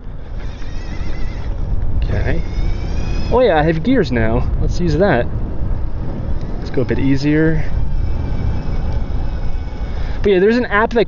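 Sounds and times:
electric motor whine: 0.0s - 4.0s, 5.8s - 10.6s
wind rumbling on microphone: 0.0s - 11.0s.

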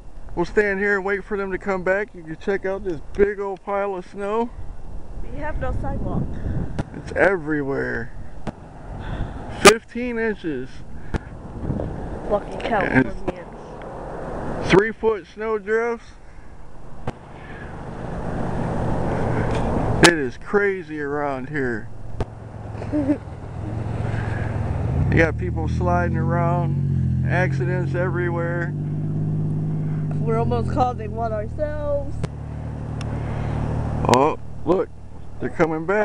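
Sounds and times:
car engine and road noise: 0.0s - 36.0s.

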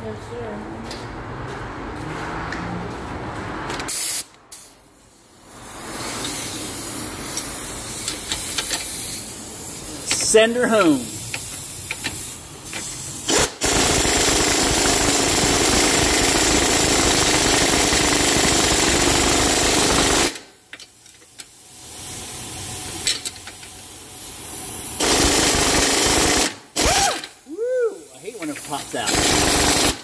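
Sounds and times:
pneumatic air gun running: 3.9s - 27.5s, 28.2s - 30.0s.

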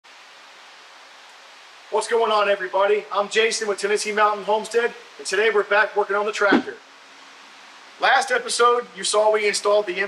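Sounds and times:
room noise hiss: 0.0s - 10.0s
man speaking: 5.5s - 6.8s.

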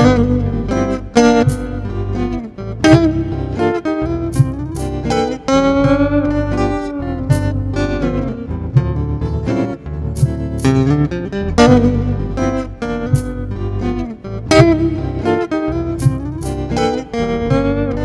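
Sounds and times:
electric blues guitar lead: 0.0s - 18.0s
looped low rhythm guitar: 0.0s - 18.0s.

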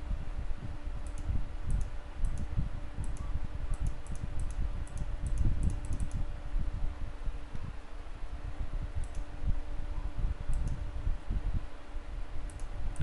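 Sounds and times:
computer mouse clicking: 1.0s - 6.2s, 9.0s - 9.3s, 10.5s - 10.8s, 12.5s - 12.7s.

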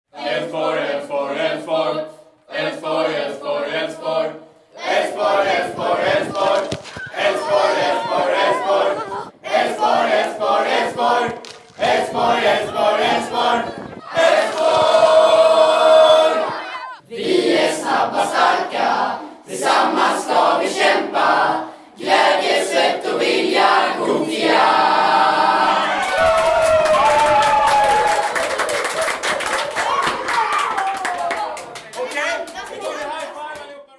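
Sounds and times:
boys chanting in unison: 0.2s - 25.9s
boys shouting and cheering: 4.8s - 11.4s, 12.0s - 17.1s, 25.3s - 33.7s
rapid hand clapping: 11.2s - 12.1s, 26.2s - 33.7s.

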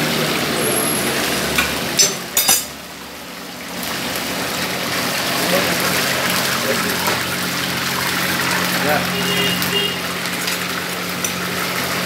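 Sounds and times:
dough sizzling in hot oil: 0.0s - 12.0s.

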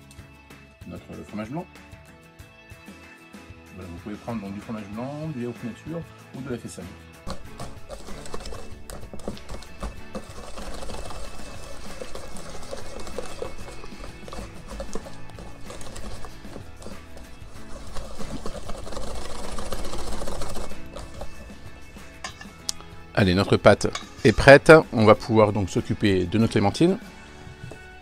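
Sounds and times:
background music: 0.0s - 28.0s
whisk scraping metal bowl: 7.3s - 22.6s, 23.7s - 24.6s.

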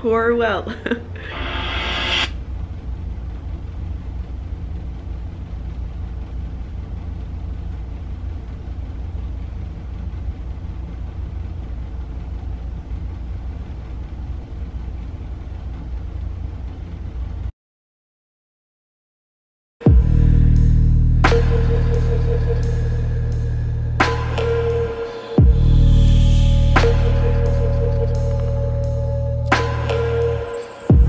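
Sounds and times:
low rumbling drone soundtrack: 0.0s - 17.5s, 19.9s - 31.0s.

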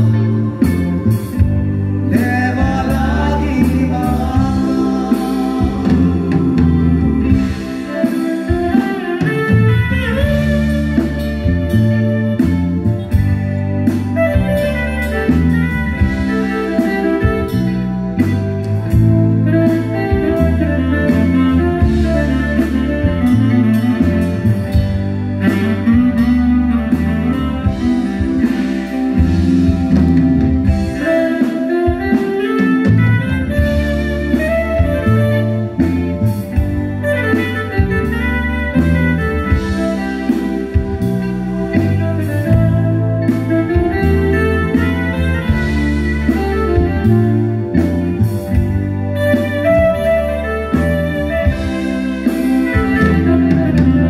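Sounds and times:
live instrumental band music: 0.0s - 54.0s.

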